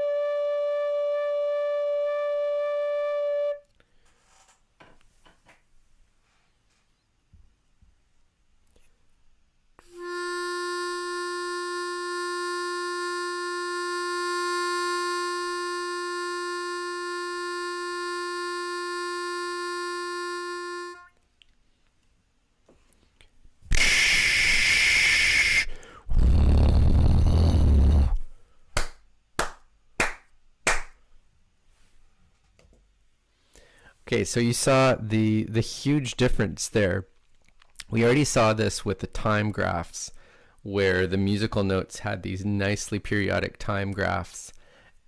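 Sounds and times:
harmonica holding one note: 9.8s - 21.2s, 23.7s - 28.1s
bursts of hissing noise: 23.7s - 27.0s.

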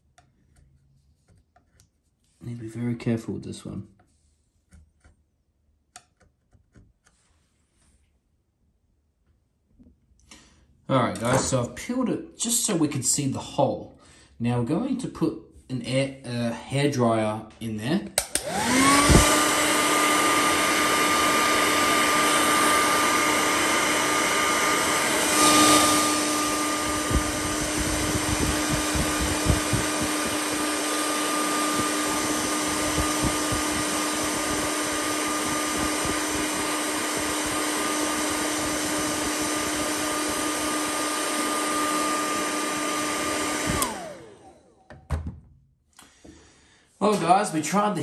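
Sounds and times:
hair dryer running: 18.2s - 45.1s.

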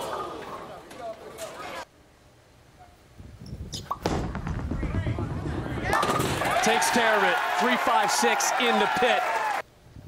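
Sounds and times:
bowling ball rolling rumble: 4.0s - 6.6s
bowling pins crashing: 4.0s - 6.8s.

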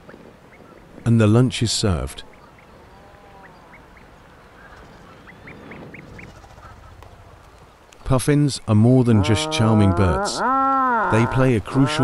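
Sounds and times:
bird chick peeping: 3.4s - 7.6s.

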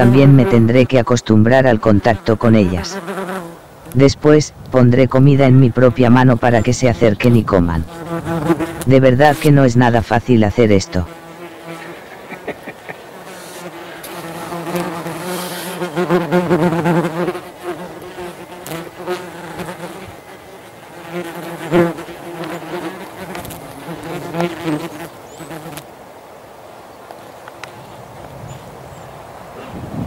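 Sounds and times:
wasps buzzing: 0.0s - 25.8s.

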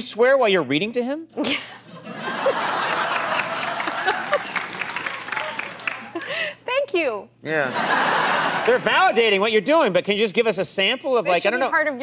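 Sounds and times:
audience applauding: 2.2s - 6.5s.

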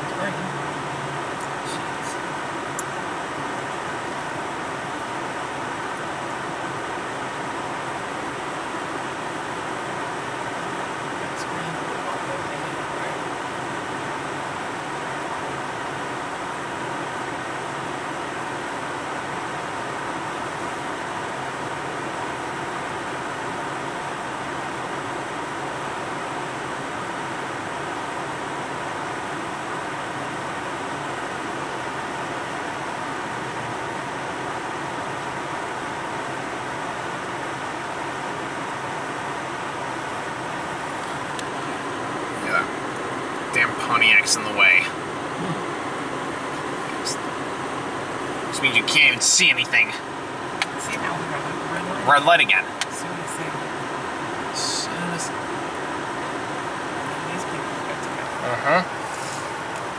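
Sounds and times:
air-conditioning fan blowing: 0.0s - 59.9s
car engine idling: 0.0s - 59.9s.

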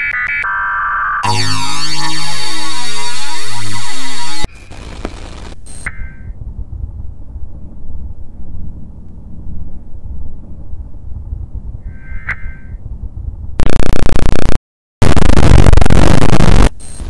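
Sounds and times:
ringing electronic blip: 1.2s - 4.5s
fluttering low rumble: 6.4s - 13.8s
static hiss: 13.6s - 17.0s.

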